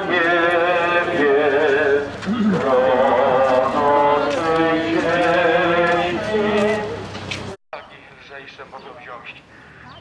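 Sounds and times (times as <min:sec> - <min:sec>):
voices singing a hymn: 0:00.0 - 0:07.0.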